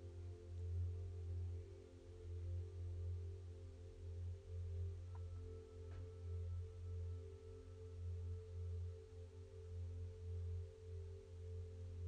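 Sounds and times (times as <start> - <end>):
ambient meditation music drone: 0.0 - 12.0.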